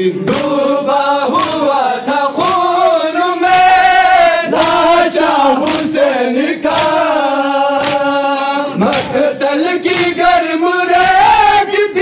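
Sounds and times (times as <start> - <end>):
men chanting in unison: 0.0 - 12.0
chest slaps: 0.3 - 0.6, 1.4 - 1.6, 2.4 - 2.7, 4.5 - 4.9, 5.6 - 5.9, 6.7 - 7.1, 7.8 - 8.1, 8.8 - 9.2, 9.9 - 10.3.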